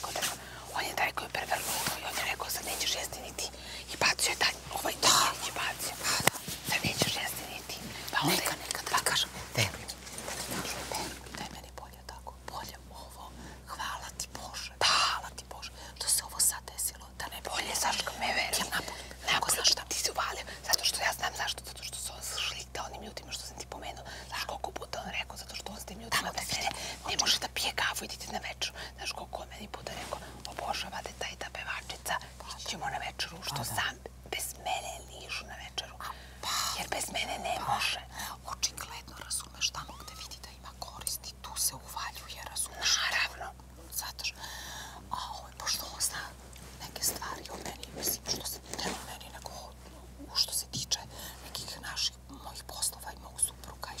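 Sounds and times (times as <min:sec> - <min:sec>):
women whispering: 0:00.0 - 0:44.4, 0:45.1 - 0:54.0.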